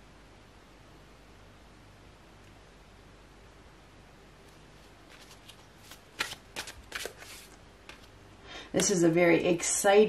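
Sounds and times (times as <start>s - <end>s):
cards riffling: 4.8s - 8.2s
sharp card snaps: 5.1s - 8.1s.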